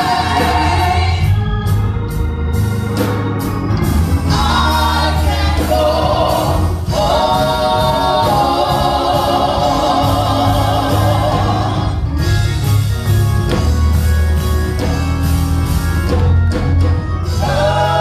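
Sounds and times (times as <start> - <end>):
group singing gospel song: 0.0 - 2.0, 4.0 - 12.7, 17.2 - 18.0.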